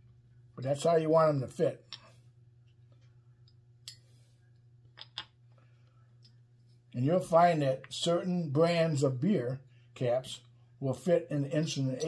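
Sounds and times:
low steady hum: 0:00.0 - 0:12.0
metal bottle caps clicking: 0:05.0 - 0:05.4.

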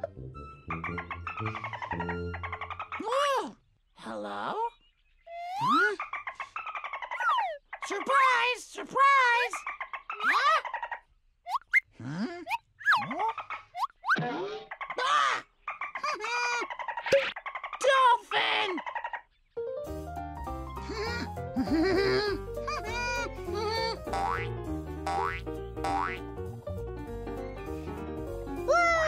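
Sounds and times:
cartoon parrot squawks: 0:07.1 - 0:07.8, 0:10.2 - 0:11.9.

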